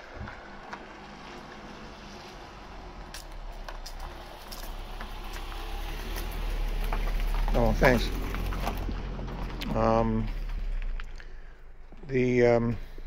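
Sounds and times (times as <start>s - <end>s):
car engine rumble: 0.0s - 13.0s.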